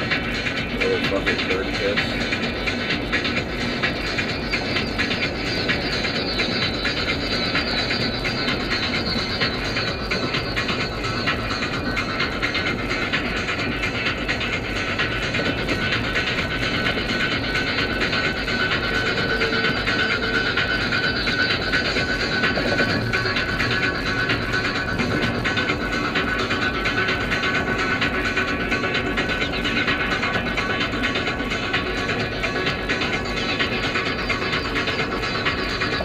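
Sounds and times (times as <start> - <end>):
music in car cabin: 0.0 - 36.0
road and engine noise: 0.0 - 36.0.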